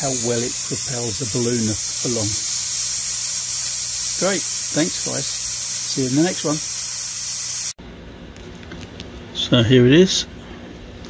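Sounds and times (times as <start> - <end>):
corona discharge hissing: 0.0 - 7.8.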